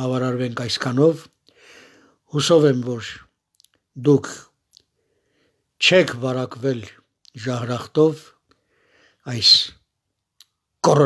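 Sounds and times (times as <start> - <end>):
man speaking: 0.0 - 1.4, 2.2 - 4.7, 5.8 - 8.4, 9.2 - 9.9, 10.7 - 11.0.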